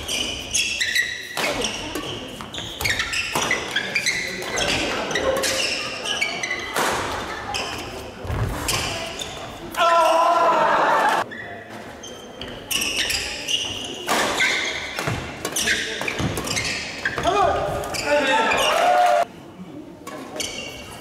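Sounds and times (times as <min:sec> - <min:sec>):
squeals echoing in a hall: 0:00.0 - 0:21.0
rackets hitting shuttlecock: 0:14.0 - 0:17.3.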